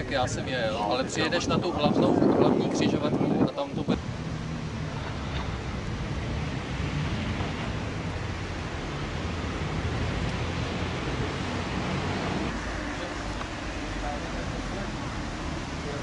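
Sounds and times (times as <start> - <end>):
wind buffeting microphone: 0.0 - 12.6
low rumble: 3.9 - 11.6.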